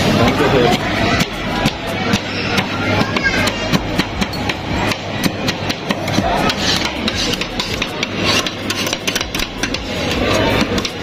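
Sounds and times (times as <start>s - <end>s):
metal spatulas scraping cold plate: 0.0s - 11.0s.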